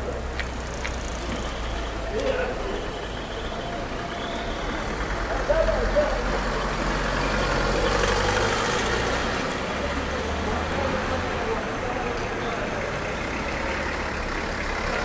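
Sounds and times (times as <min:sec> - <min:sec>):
passers-by talking: 0:00.0 - 0:15.0
vehicle engine rumbling: 0:00.0 - 0:15.0.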